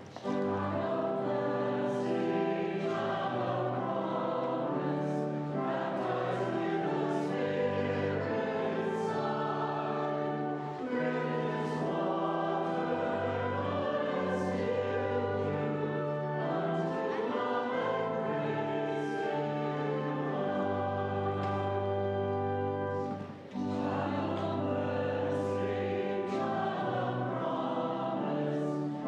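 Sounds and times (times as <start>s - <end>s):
church choir singing a hymn: 0.0s - 29.0s.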